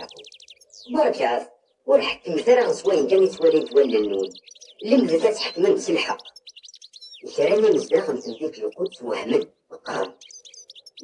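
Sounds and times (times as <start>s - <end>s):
person narrating: 0.0s - 0.2s, 0.9s - 6.2s, 7.2s - 10.2s
small birds chirping: 0.0s - 11.0s.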